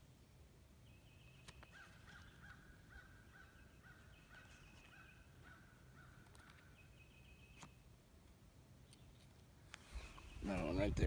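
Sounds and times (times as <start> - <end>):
faint clicks: 6.2 - 6.7
high pulsed bird call: 6.5 - 7.8, 9.8 - 10.8.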